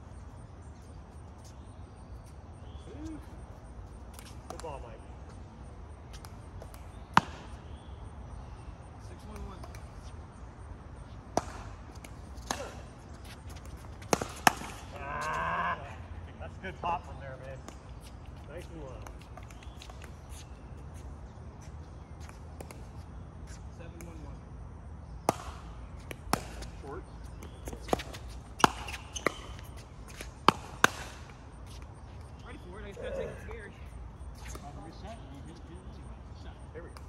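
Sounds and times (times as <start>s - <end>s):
paddles hitting plastic ball: 11.3s - 15.4s, 25.3s - 31.4s.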